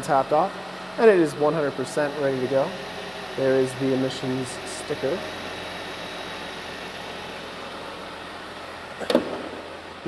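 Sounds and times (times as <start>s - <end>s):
car engine idling: 0.0s - 10.0s.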